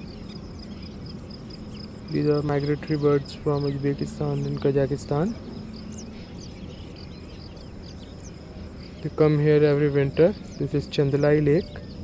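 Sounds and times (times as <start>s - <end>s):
insects chirring: 0.0s - 12.0s
steady low rumble: 0.0s - 12.0s.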